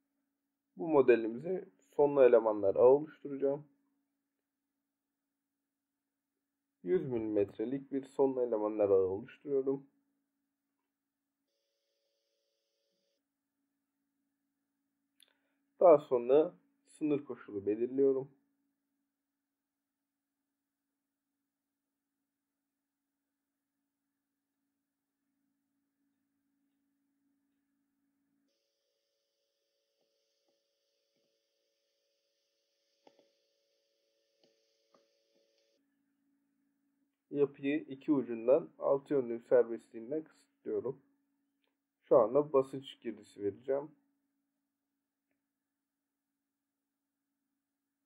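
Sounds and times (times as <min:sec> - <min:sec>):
computer mouse clicks: 0:33.0 - 0:33.4, 0:34.4 - 0:35.8.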